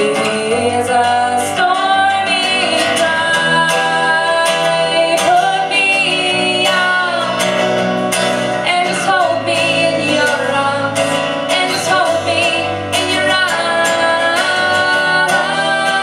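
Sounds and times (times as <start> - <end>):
acoustic guitars: 0.0 - 16.0
electric bass guitar: 0.0 - 16.0
woman singing: 0.0 - 16.0.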